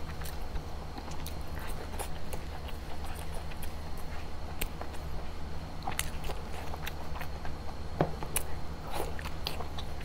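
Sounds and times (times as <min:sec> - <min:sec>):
low steady hum: 0:00.0 - 0:10.0
person chewing meat: 0:00.0 - 0:10.0.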